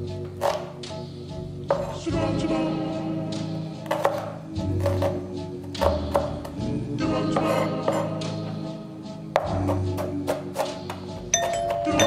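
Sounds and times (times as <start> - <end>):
doo-wop ballad: 0.0 - 10.3
knife chopping on cutting board: 0.4 - 0.7, 3.8 - 6.7, 9.4 - 11.0
doorbell chime: 11.3 - 12.0.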